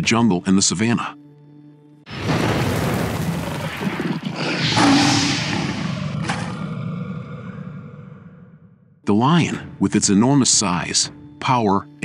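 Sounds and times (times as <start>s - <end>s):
roar-like hit with claw slashes: 3.1s - 7.4s.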